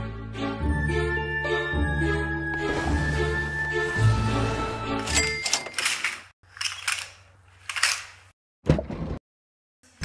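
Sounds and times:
music: 0.0 - 5.3.

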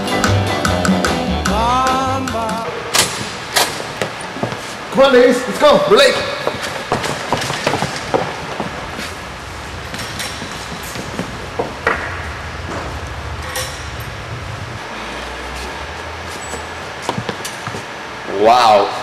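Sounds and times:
low hum: 8.0 - 18.3.

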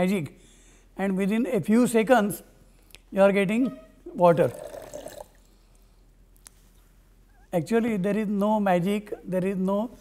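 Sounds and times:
water pouring into plastic jug: 4.4 - 5.5.

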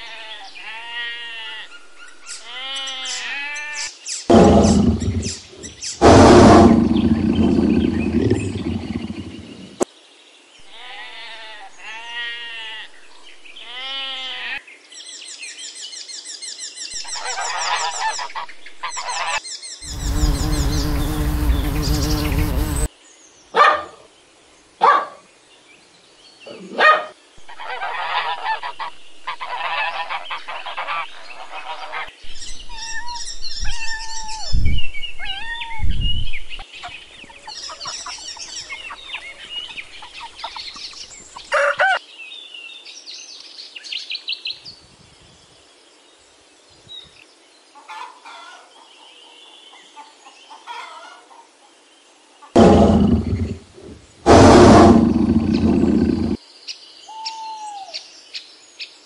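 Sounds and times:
sheep bleat: 0.0 - 1.7, 2.4 - 3.9, 10.7 - 13.0, 13.6 - 14.6
high bird chirps: 19.8 - 22.9
goose honking: 27.6 - 32.1.

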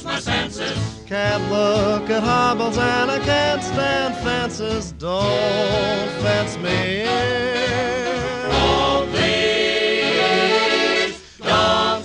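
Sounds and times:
vocal group singing held chords: 0.0 - 4.6, 5.2 - 12.0
big band playing: 0.3 - 11.9.

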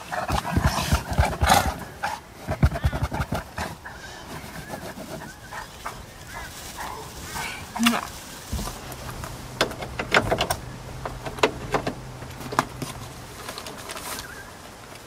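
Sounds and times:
dog moving against bedding: 0.2 - 15.0.

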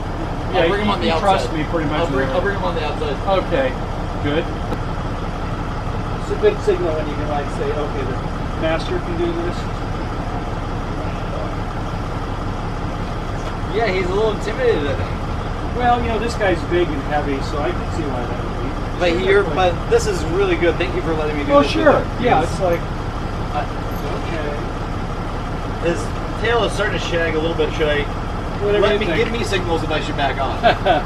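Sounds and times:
engine idling: 0.0 - 31.0.

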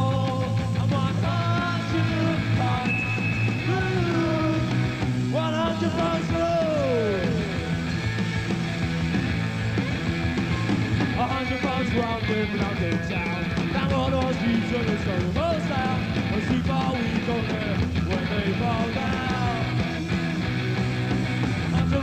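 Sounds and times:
punk rock band playing live: 0.0 - 22.0
high sliding guitar note: 2.8 - 4.2.

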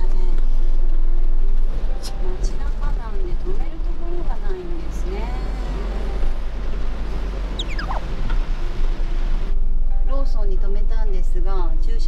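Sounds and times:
van driving low drone: 0.0 - 12.0
whistle falling in pitch: 7.6 - 8.0.

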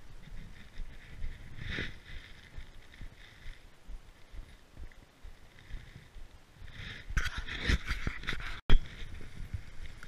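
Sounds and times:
bike rattling: 0.0 - 3.7
tyres rolling over dry leaves: 0.3 - 4.7.

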